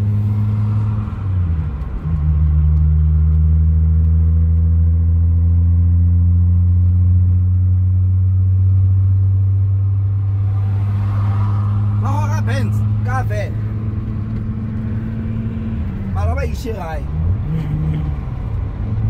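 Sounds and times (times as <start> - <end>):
car engine and road drone: 0.0 - 19.0.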